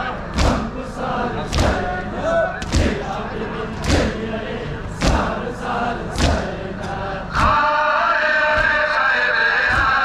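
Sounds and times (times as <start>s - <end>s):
many voices chanting a lament: 0.0s - 10.0s
crowd beating chests: 0.3s - 0.8s, 1.4s - 2.0s, 2.6s - 3.1s, 3.7s - 4.3s, 5.0s - 5.4s, 6.1s - 6.6s, 8.5s - 9.0s, 9.6s - 10.0s.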